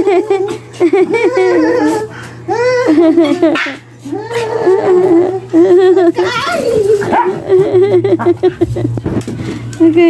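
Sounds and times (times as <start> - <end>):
dogs whining and yipping: 0.0 - 7.9.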